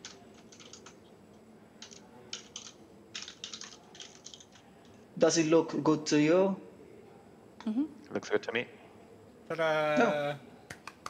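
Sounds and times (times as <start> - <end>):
computer keyboard typing: 0.0 - 1.0, 1.8 - 4.7.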